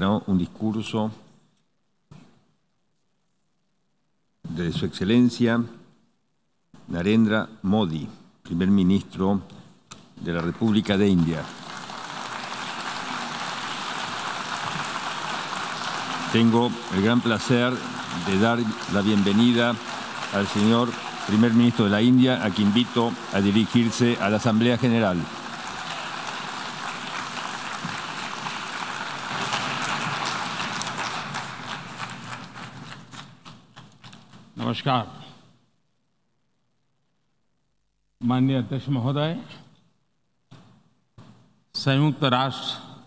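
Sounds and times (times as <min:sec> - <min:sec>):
audience applauding: 0:10.4 - 0:33.6.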